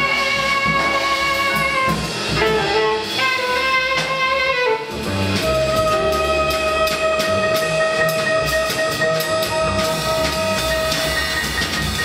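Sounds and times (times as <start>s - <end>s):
bass: 0.0s - 12.0s
drums and cymbals: 0.0s - 12.0s
horn holding long note: 0.0s - 12.0s.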